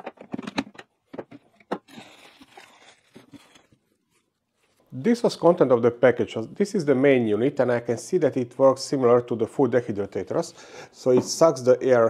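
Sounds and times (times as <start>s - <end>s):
hard plastic clicks and knocks: 0.0s - 1.9s
soft rustling: 2.2s - 5.0s.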